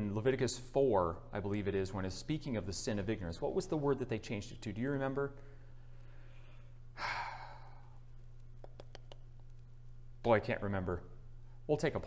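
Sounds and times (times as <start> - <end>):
low hum: 0.0 - 12.0
man sighing: 7.0 - 8.0.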